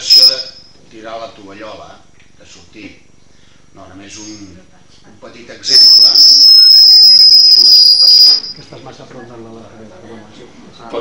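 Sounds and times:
microphone feedback squeal: 0.0s - 0.7s, 5.7s - 8.6s.

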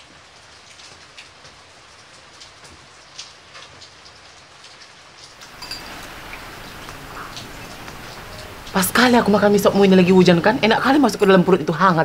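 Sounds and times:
steady rain hiss: 0.0s - 12.0s
drip ticks: 5.2s - 8.8s.

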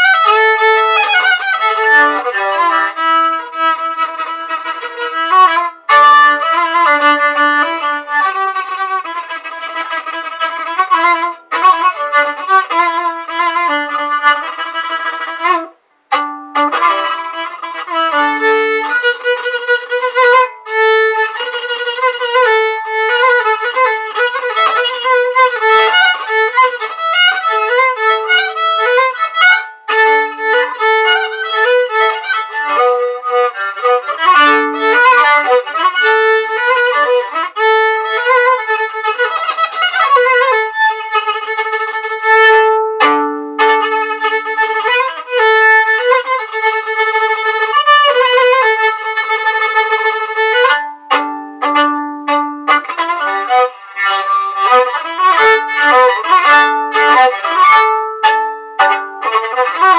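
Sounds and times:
solo violin melody: 0.0s - 59.9s.

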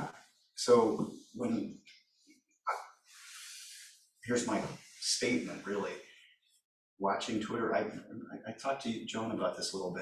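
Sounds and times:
person speaking: 4.2s - 6.2s.

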